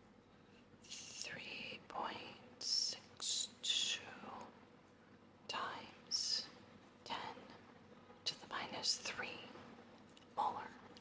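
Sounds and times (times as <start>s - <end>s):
person whispering: 0.9s - 4.5s, 5.5s - 7.6s, 8.3s - 9.6s, 10.3s - 11.0s.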